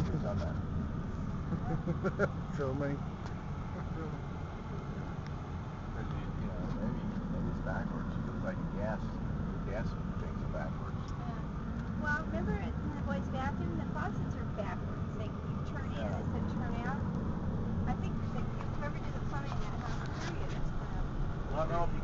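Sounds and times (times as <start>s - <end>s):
road and engine rumble: 0.0s - 22.0s
people talking quietly: 5.9s - 17.1s.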